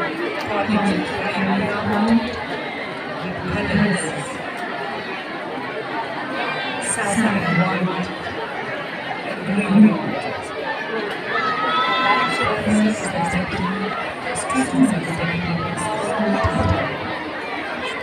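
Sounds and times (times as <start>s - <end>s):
crowd chattering: 0.0s - 18.0s.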